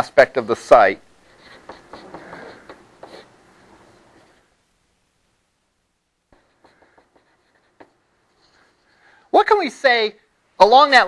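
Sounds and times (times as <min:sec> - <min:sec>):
pen taps and strokes of writing: 0:01.5 - 0:04.3, 0:06.3 - 0:08.0.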